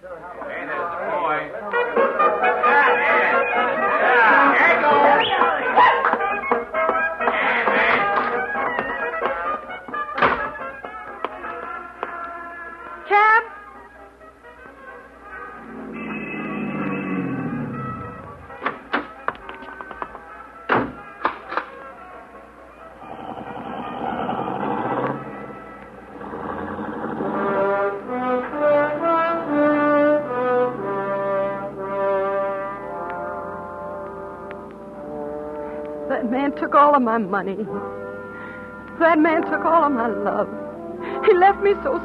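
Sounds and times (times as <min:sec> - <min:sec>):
band music with brass: 0:01.7 - 0:19.4, 0:20.1 - 0:36.3, 0:37.7 - 0:38.9, 0:39.6 - 0:42.0.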